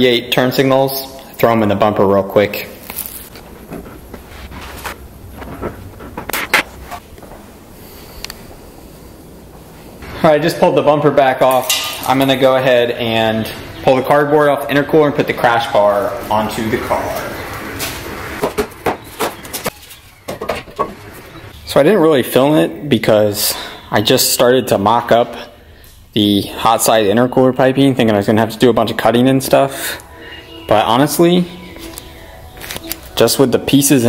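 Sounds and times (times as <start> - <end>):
low workshop background: 0.0 - 34.0.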